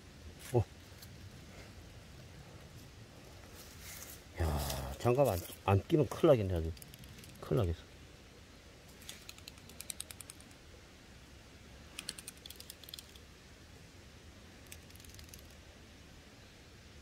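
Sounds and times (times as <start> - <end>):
dry leaves and twigs crackling: 2.6 - 5.9.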